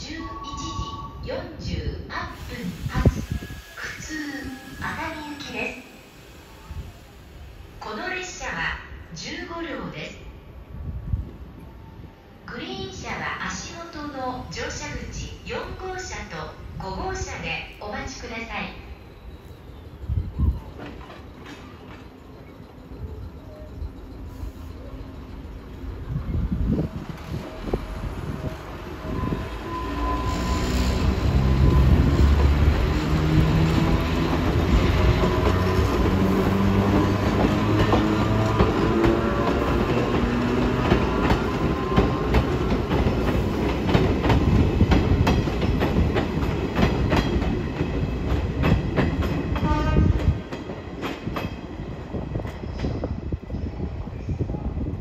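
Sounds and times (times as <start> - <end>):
train wheels clattering over rail joints: 35.2 - 51.7.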